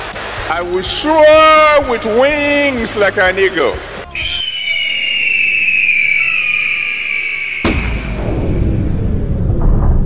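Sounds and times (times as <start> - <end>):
falling whistle: 4.1 - 8.8
deep rumbling boom: 7.6 - 10.0.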